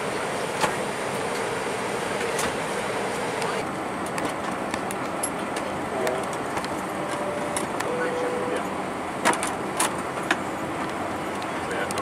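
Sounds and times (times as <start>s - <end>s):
airliner cabin noise: 0.0s - 12.0s.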